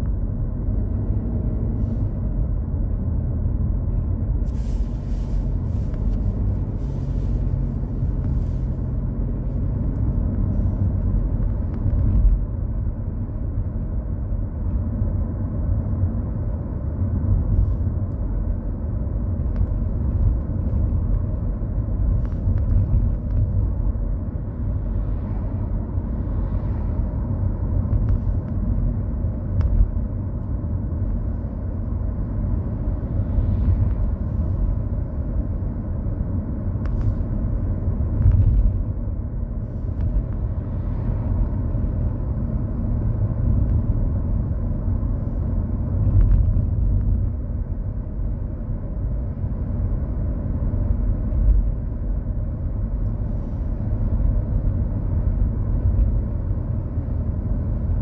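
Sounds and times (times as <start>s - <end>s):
car driving interior rumble: 0.0s - 58.0s.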